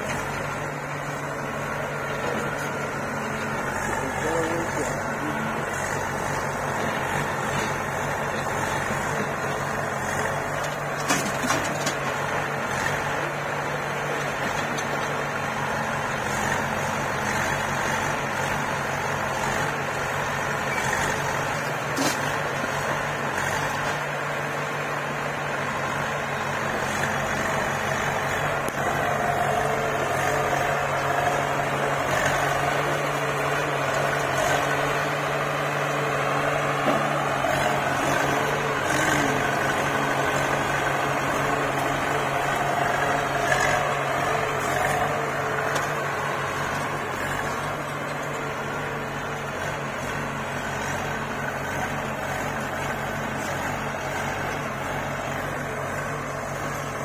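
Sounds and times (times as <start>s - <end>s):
diesel engines running: 0.0s - 57.0s.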